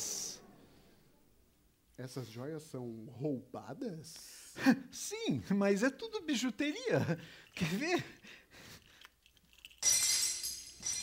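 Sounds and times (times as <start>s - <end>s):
glass shattering: 9.4s - 11.0s.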